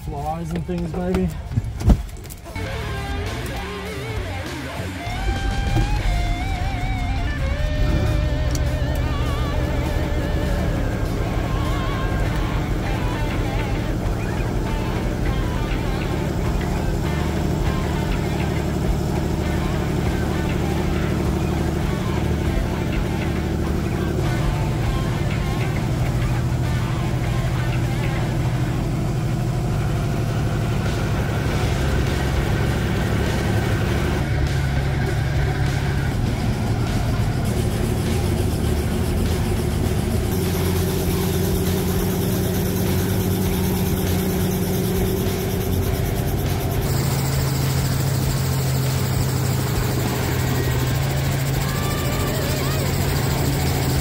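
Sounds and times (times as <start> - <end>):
background music: 0.0 - 54.0
helicopter engine and rotor: 2.5 - 54.0.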